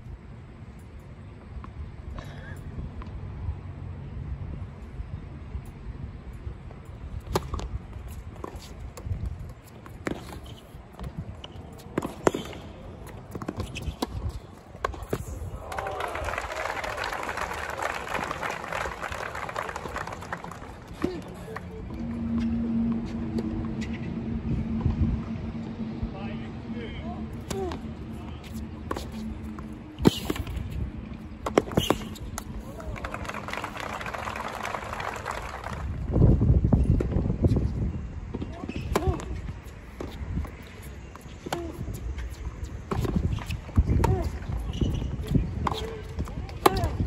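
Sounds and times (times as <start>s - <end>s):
applause: 15.6s - 21.6s, 32.7s - 36.1s.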